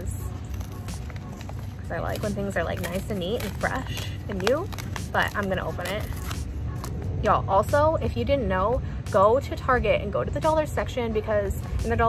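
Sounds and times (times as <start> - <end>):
fingers picking at paper bag: 0.0 - 7.0
steady low rumble: 0.0 - 12.0.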